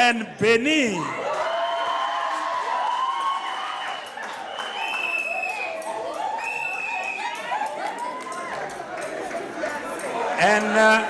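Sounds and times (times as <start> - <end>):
crowd cheering: 1.0 - 11.0.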